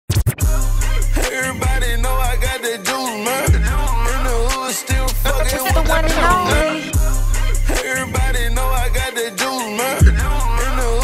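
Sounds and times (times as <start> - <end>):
gliding vocal line: 5.1 - 7.0.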